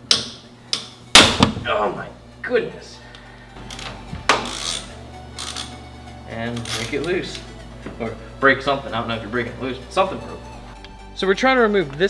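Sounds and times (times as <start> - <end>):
background music: 0.0 - 12.0
ratchet clicking: 3.7 - 5.8.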